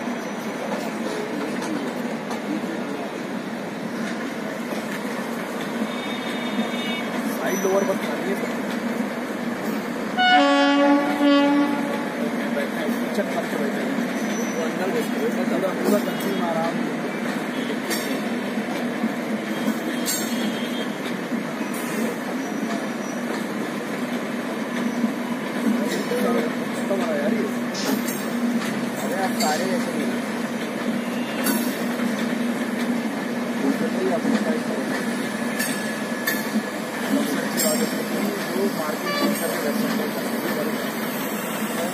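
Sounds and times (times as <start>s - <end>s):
train wheels rumbling on rails: 0.0s - 41.9s
locomotive air horn blasts: 10.2s - 12.1s, 39.0s - 39.4s.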